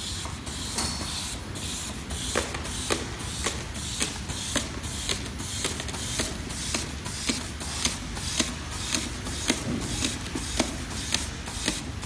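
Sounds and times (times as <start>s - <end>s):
labeling machine whirring: 0.0s - 12.0s.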